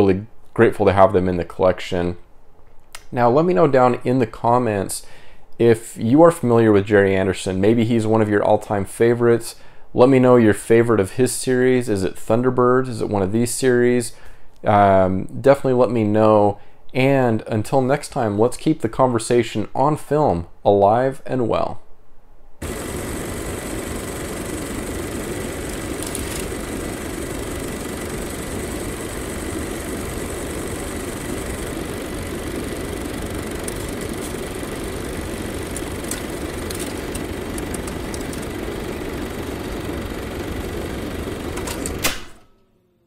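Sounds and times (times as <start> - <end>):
film projector running: 22.6 - 42.5
projector stopping click: 22.6 - 42.7
faint crackling clicks: 25.3 - 26.9, 35.6 - 38.6.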